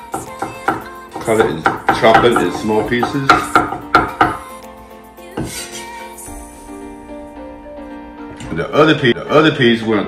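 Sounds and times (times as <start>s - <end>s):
background music with held notes: 0.0s - 10.0s
cleaver knocking on cutting board: 0.2s - 4.4s.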